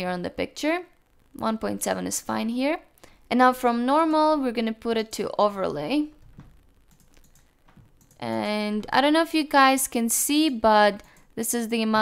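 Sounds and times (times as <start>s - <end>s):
keyboard and mouse clicks: 6.2s - 9.0s.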